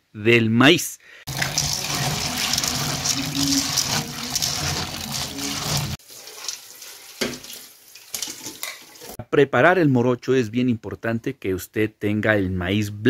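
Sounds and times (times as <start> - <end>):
hand stirring kernels: 1.3 - 6.0
tap water running into pan: 1.3 - 9.2.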